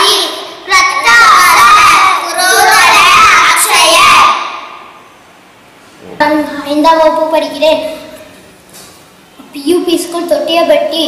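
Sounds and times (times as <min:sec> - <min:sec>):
children chanting in unison: 0:00.0 - 0:04.9.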